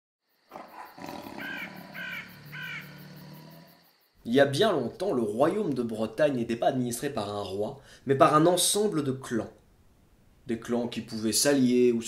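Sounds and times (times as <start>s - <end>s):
harsh cawing calls: 0.5s - 3.6s.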